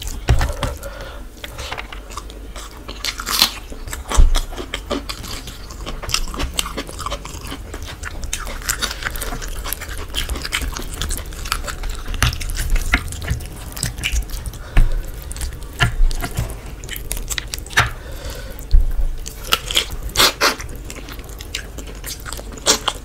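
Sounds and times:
close chewing: 0.0s - 23.0s.

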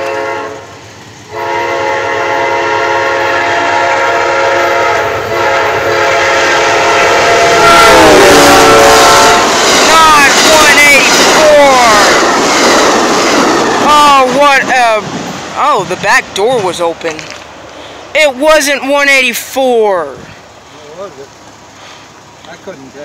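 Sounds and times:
train horn chord: 0.0s - 9.6s
train rushing by: 0.0s - 23.0s.

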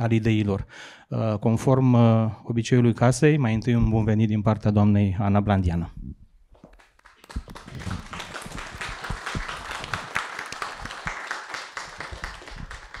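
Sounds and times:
audience applauding: 6.7s - 13.0s.

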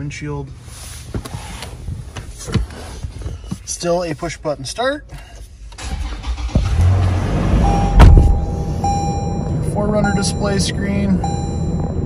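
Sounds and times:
car engine starting and idling: 5.2s - 12.0s
thin steady beep tone: 7.6s - 12.0s.

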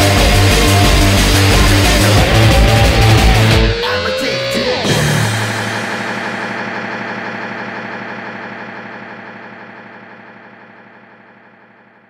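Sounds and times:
distorted electric guitar chord ringing: 0.0s - 11.8s.

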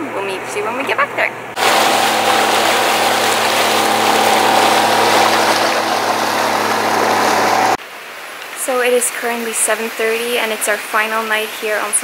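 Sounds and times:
boat engine hum: 0.0s - 7.8s
churning wake water: 0.1s - 7.8s.

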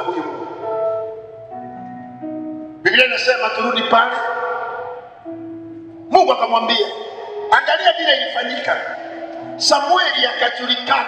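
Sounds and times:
keyboard music sustained chords: 0.0s - 11.0s.

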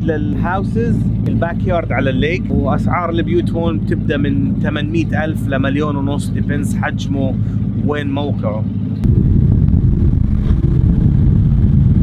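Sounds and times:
speedboat engine drone: 0.0s - 12.0s.

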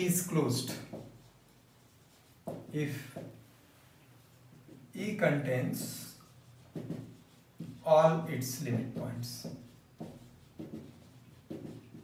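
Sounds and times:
marker pen on whiteboard: 0.0s - 12.0s.

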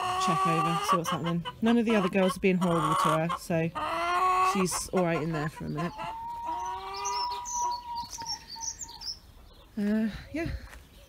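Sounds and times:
long steady bird call: 3.7s - 11.0s.

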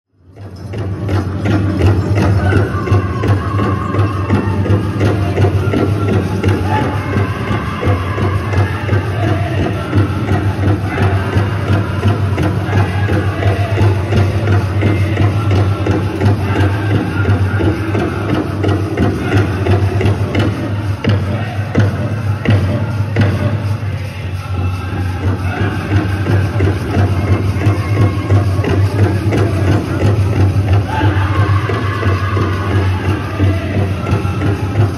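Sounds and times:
steady drum beat: 0.6s - 34.9s
voices singing: 0.8s - 34.9s.

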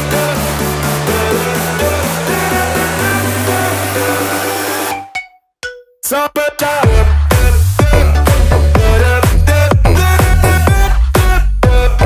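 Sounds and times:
instrumental pop music: 0.0s - 12.0s.

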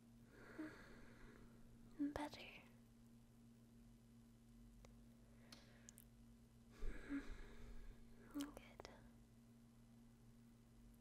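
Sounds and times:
low steady hum: 0.0s - 11.0s
breathy whisper: 6.8s - 9.2s.

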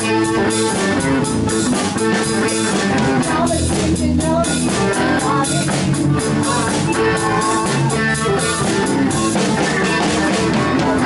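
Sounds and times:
drum kit with cymbals: 0.0s - 11.0s
electric bass: 0.0s - 11.0s.

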